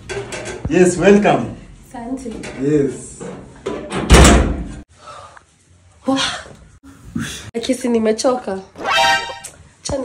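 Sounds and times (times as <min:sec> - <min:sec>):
metal door slamming: 0:03.9 - 0:04.7.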